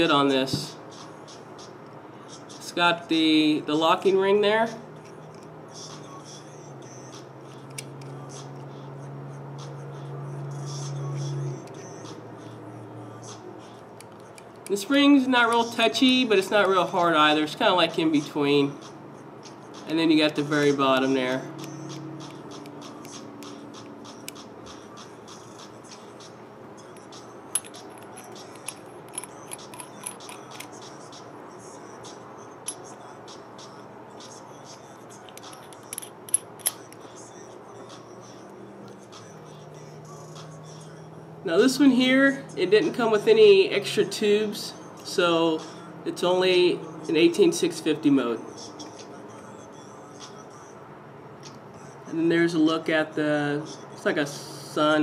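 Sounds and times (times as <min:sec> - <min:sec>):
small metal parts clicking: 0:27.5 - 0:30.8, 0:35.2 - 0:37.0.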